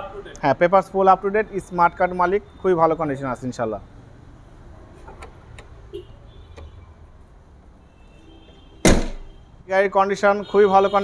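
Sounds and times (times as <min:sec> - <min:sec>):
car bonnet slamming shut: 0:08.8 - 0:09.4.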